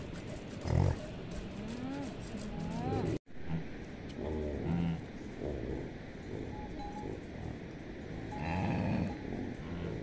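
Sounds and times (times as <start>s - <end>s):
yaks grunting and calling: 2.9s - 10.0s.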